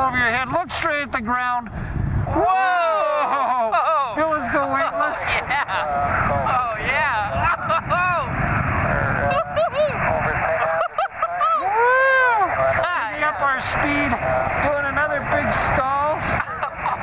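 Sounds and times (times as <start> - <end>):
wind rushing on microphone: 0.0 - 17.0
people whooping and exclaiming: 2.2 - 4.2, 9.0 - 13.2.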